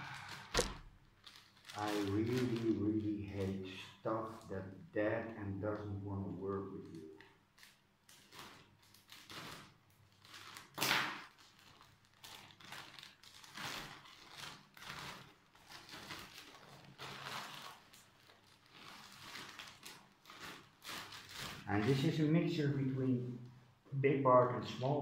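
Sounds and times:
plastic bag crinkling: 0.0s - 4.5s, 6.6s - 22.6s.

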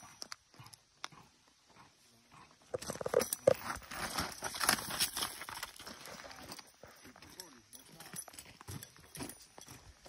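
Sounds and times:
footsteps on gravel: 2.6s - 10.0s.

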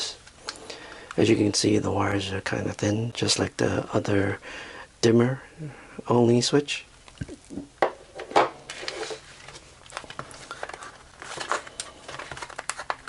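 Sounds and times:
light scraping and rustling: 8.1s - 12.4s.

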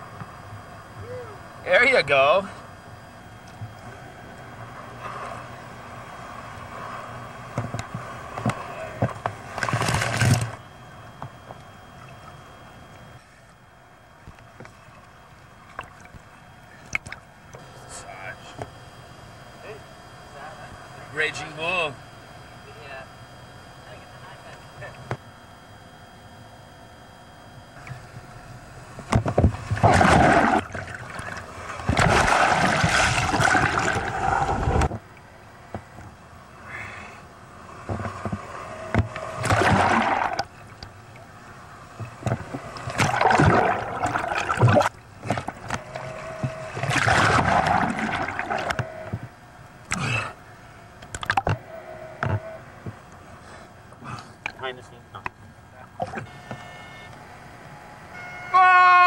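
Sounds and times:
surf water washing over camera: 29.5s - 35.0s, 37.8s - 40.8s, 42.1s - 49.2s.

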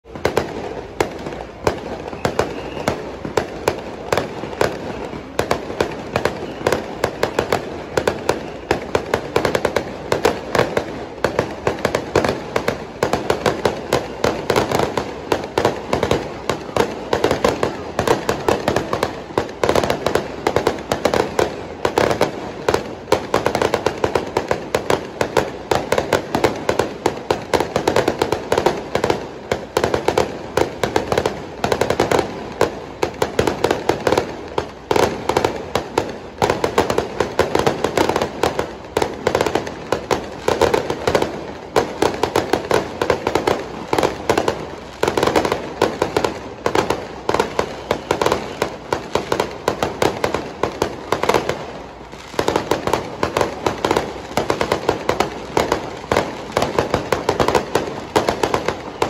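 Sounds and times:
fireworks and firecrackers banging: 0.0s - 59.0s.

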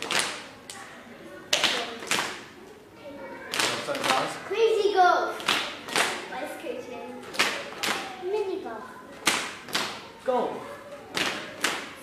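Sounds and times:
children clapping hands: 0.0s - 0.8s, 1.5s - 2.5s, 3.5s - 4.4s, 5.4s - 6.3s, 7.3s - 8.2s, 9.2s - 10.0s, 11.1s - 12.0s.

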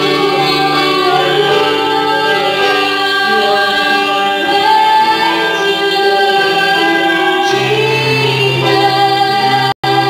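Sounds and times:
singers in harmony: 0.0s - 10.0s.

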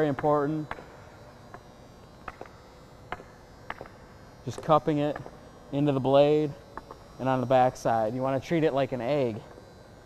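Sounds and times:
hockey stick tapping puck on ice: 1.5s - 5.4s.

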